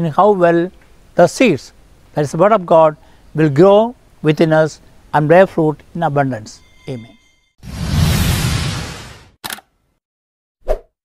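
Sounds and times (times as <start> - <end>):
whoosh: 6.5 - 9.4.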